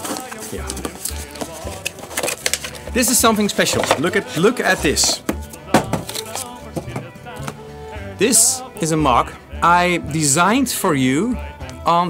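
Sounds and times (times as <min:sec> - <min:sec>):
cardboard box being opened: 0:00.0 - 0:02.8
clicks and rustles of card: 0:00.0 - 0:02.8.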